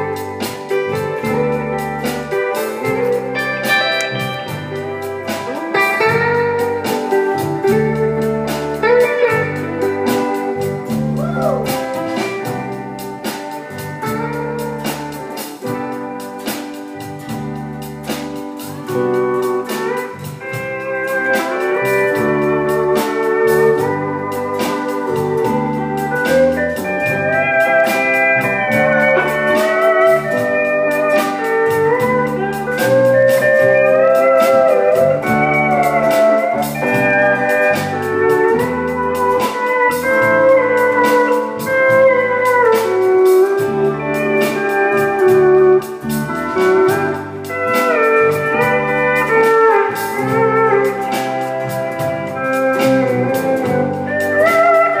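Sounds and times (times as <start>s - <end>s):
country band playing: 0.0s - 55.0s
pedal steel guitar melody: 0.0s - 55.0s.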